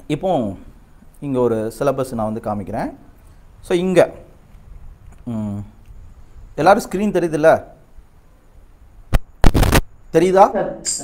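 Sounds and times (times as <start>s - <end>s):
loud burst of noise: 9.1s - 10.0s.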